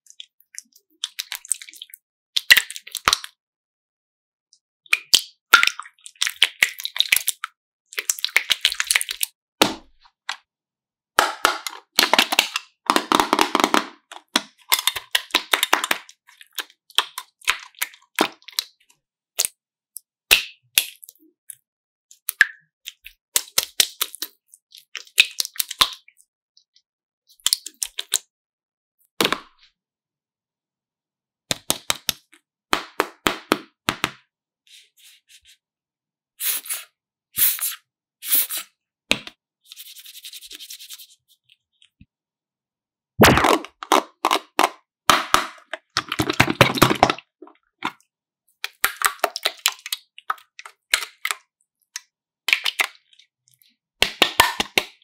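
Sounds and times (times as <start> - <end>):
slime popping and crackling: 43.2 - 47.2.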